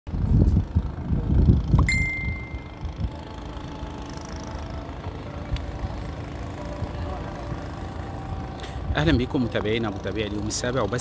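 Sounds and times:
low rumbling: 0:00.1 - 0:11.0
steady background hum: 0:00.1 - 0:11.0
short high-pitched bell ring: 0:01.9 - 0:02.8.

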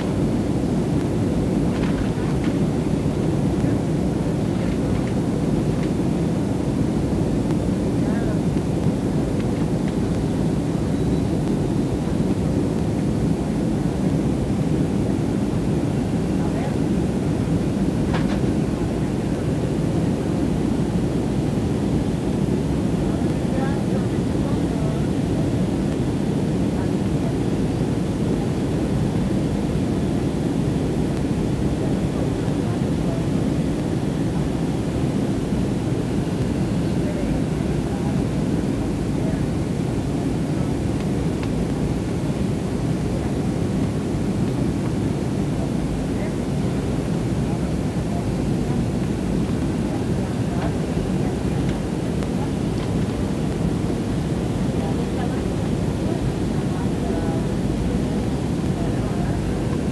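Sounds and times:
jet airliner cabin rumble: 0:00.0 - 0:59.9.

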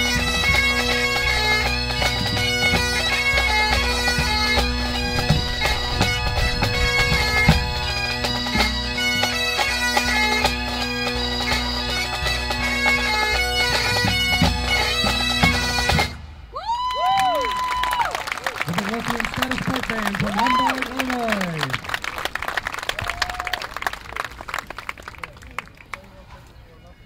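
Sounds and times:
bagpipe drones sagging in pitch: 0:00.0 - 0:16.2
bagpipes: 0:00.0 - 0:16.3.

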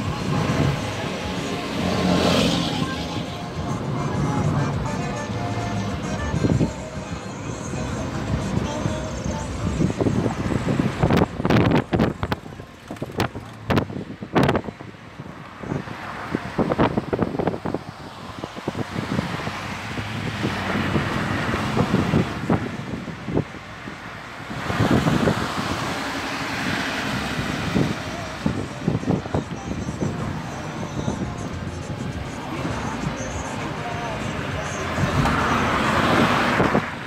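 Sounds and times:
car road noise: 0:00.0 - 0:37.0
wind: 0:00.0 - 0:37.0.

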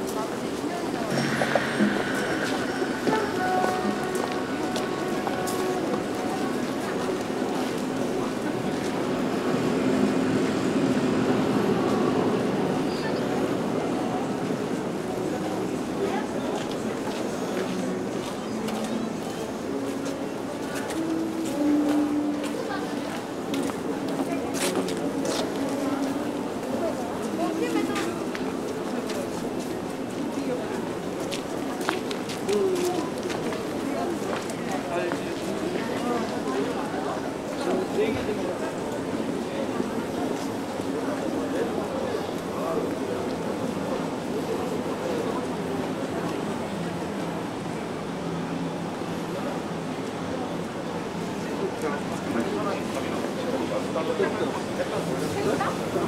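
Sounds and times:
indistinct chatter: 0:00.0 - 0:56.0.

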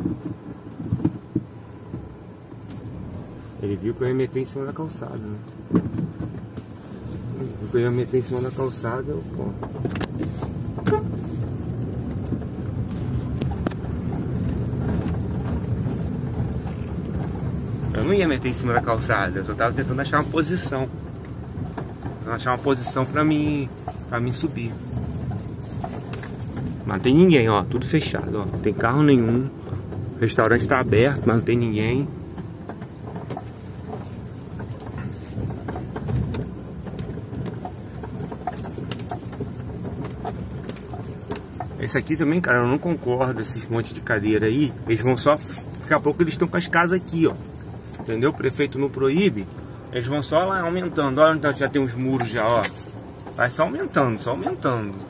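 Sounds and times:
car rumbling over cobblestones: 0:00.0 - 0:55.0
light clicks and rattles: 0:04.4 - 0:55.0.

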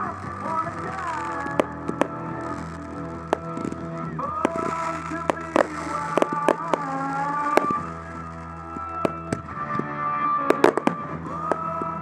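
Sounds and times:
music: 0:00.0 - 0:12.0
firework shells bursting: 0:00.2 - 0:09.4, 0:10.5 - 0:11.7.

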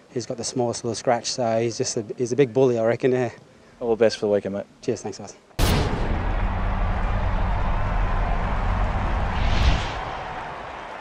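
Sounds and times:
low rumbling drone: 0:05.6 - 0:10.5
whoosh: 0:05.6 - 0:11.0.

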